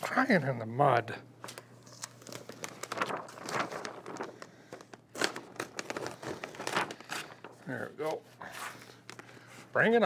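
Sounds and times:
paper backing peeled and crinkling: 1.4 - 9.9.

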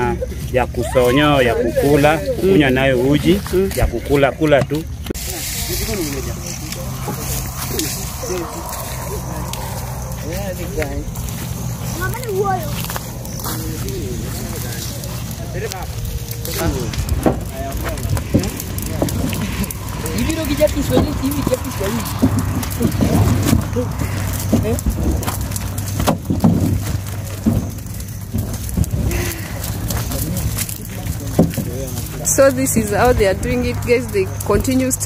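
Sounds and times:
people talking indistinctly: 0.0 - 25.5, 29.1 - 35.0
steady low hum: 2.8 - 35.0
short crackles and knocks: 10.8 - 33.9.

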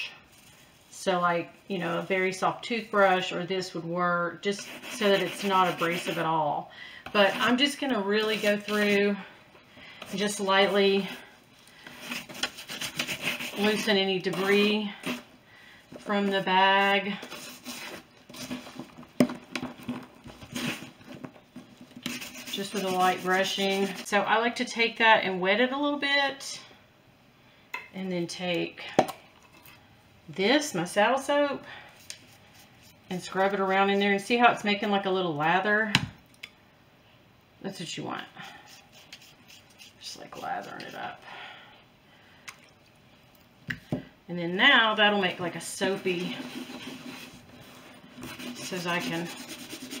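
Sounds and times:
brush squishing wet lather: 4.4 - 6.4, 7.2 - 9.1, 12.0 - 15.3, 22.0 - 24.1, 38.3 - 41.2, 45.8 - 50.0
leather handbag rubbing: 46.1 - 50.0.

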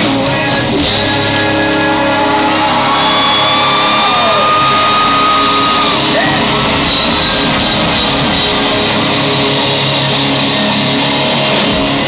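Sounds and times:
live rock band playing: 0.0 - 12.0
crowd cheering and whooping: 1.6 - 12.0.

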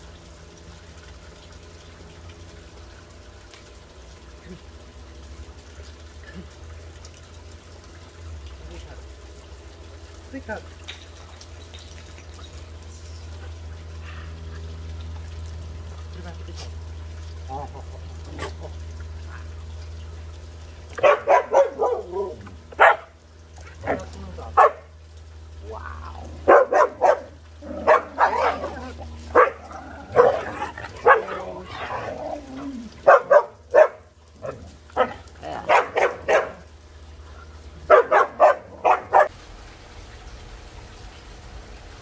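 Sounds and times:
dog barking and yipping: 21.0 - 23.1, 23.8 - 24.9, 26.4 - 32.1, 33.0 - 36.7, 37.9 - 39.3.

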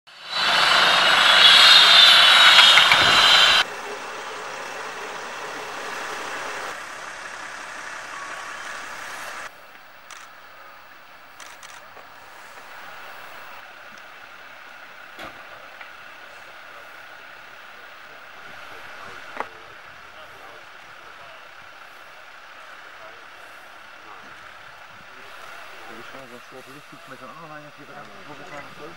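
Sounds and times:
loud vehicle engines running: 0.1 - 28.9
quiet engine hum: 2.9 - 28.9.

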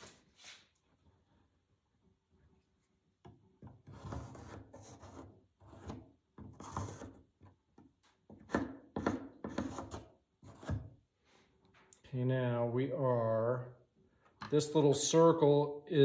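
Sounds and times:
pencil scratching on wood: 3.6 - 7.5, 8.9 - 10.9.

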